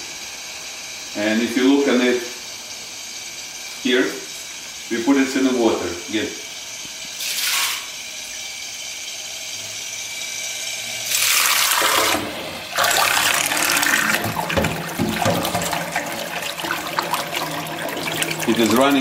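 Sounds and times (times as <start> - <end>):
underwater thruster whirring: 8.6 - 19.0
water churning: 11.1 - 19.0.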